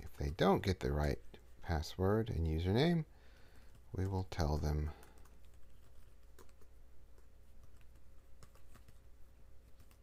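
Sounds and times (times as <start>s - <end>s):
typing on computer keyboard: 3.6s - 9.0s, 9.6s - 10.0s.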